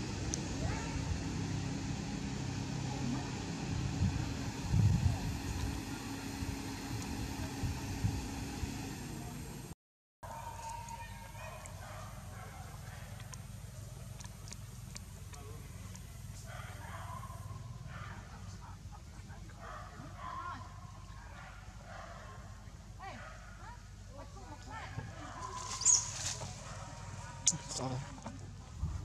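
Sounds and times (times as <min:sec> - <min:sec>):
steady low hum: 0:00.0 - 0:09.8, 0:11.2 - 0:29.0
animal calls: 0:25.4 - 0:28.0.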